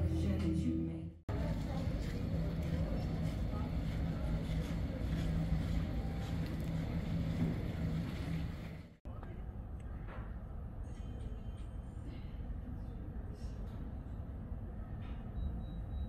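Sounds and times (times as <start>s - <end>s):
low hum: 0.0s - 12.8s
hubbub of distant voices: 1.3s - 15.2s.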